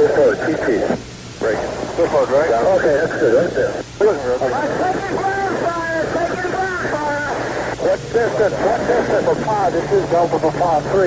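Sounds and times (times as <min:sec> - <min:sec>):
man talking over radio: 0:00.0 - 0:11.0
static hiss: 0:00.0 - 0:11.0.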